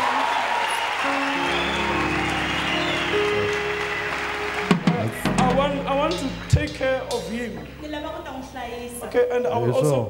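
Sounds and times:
congregation crowd noise: 0:00.0 - 0:08.9
keyboard chords: 0:00.9 - 0:10.0
low bass note: 0:04.4 - 0:08.3
sharp drum hits: 0:04.6 - 0:07.8.

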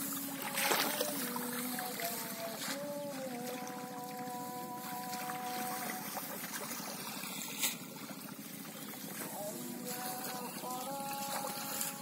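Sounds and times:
steady droning tone: 0:00.0 - 0:12.0
water sloshing and splashing: 0:00.0 - 0:12.0.

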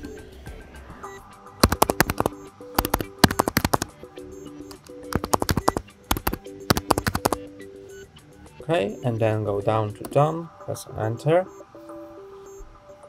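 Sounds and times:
faint background music: 0:00.0 - 0:13.0
keyboard key clicks: 0:01.6 - 0:03.9, 0:04.7 - 0:07.4.

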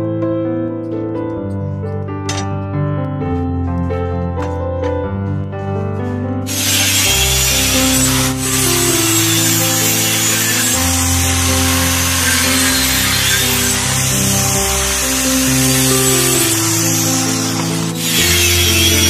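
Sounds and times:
background music: 0:00.0 - 0:19.0
circular saw cutting wood: 0:06.5 - 0:19.0.

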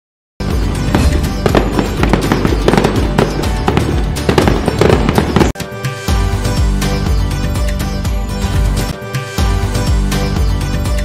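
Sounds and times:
music: 0:00.4 - 0:11.0
firework bangs and crackling: 0:00.8 - 0:05.6.

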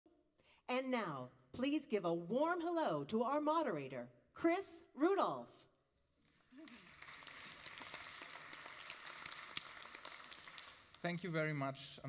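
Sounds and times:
audience applauding: 0:06.4 - 0:11.5.

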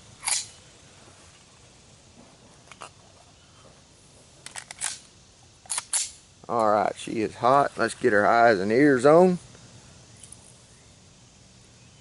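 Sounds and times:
metallic gun clicks: 0:00.2 - 0:00.5, 0:04.4 - 0:06.2.

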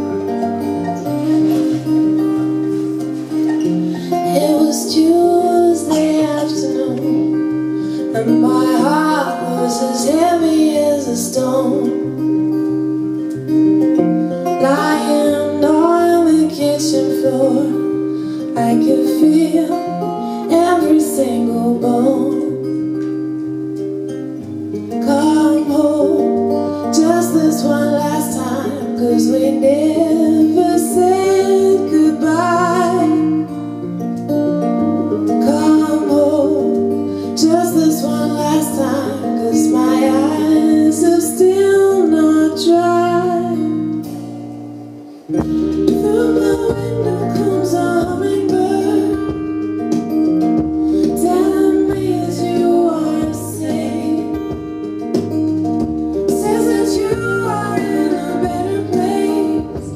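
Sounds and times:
live band with guitar and bass: 0:00.0 - 0:59.9
woman singing: 0:03.6 - 0:13.2, 0:13.8 - 0:23.0, 0:24.9 - 0:34.0, 0:35.1 - 0:44.0, 0:45.3 - 0:55.2, 0:56.0 - 0:59.9.

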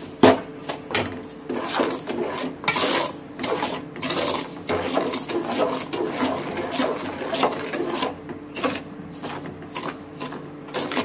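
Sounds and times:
metal spoon scraping aluminium bowl: 0:01.5 - 0:11.0.

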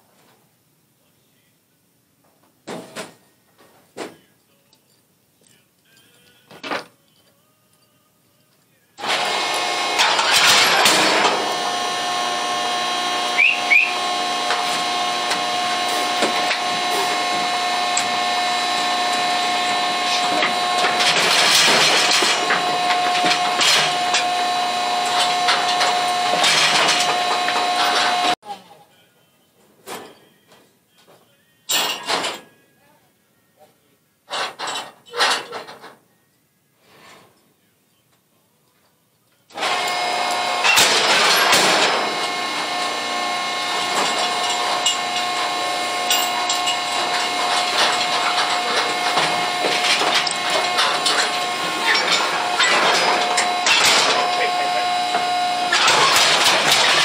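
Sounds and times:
machine motor whine: 0:09.0 - 0:28.4, 0:39.5 - 0:57.0
metal clanks: 0:09.0 - 0:28.4, 0:34.3 - 0:36.0, 0:39.6 - 0:57.0.

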